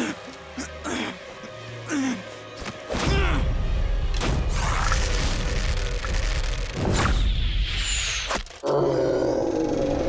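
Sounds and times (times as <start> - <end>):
dramatic orchestral score: 0.0 - 7.6.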